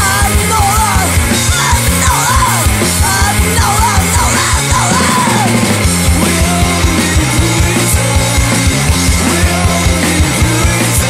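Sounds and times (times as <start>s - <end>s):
fast drum hits: 0.0s - 11.0s
punk rock band playing: 0.0s - 11.0s
yelled lead vocal: 0.0s - 11.0s.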